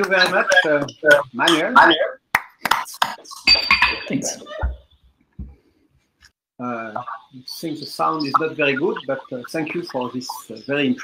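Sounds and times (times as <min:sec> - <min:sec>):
man speaking: 0:00.0 - 0:02.2, 0:06.6 - 0:11.0.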